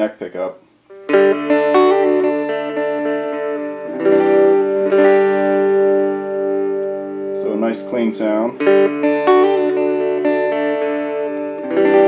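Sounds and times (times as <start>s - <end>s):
clean electric guitar chords: 0.9s - 12.0s.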